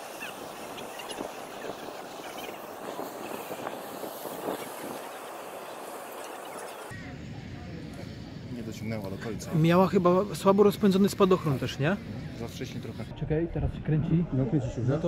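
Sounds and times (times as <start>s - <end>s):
open-air background hiss: 0.0s - 13.1s
faint distant voices: 6.9s - 13.1s.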